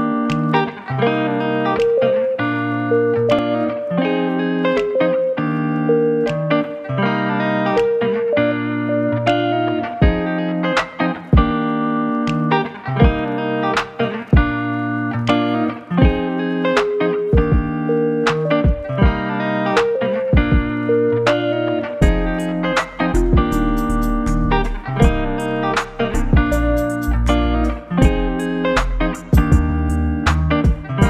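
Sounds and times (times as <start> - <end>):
plucked guitar-like notes: 0.0 - 31.0
deep beat: 10.0 - 10.3, 11.4 - 11.6, 13.0 - 13.4, 14.3 - 14.6, 16.0 - 16.4, 17.4 - 20.9, 22.0 - 31.0.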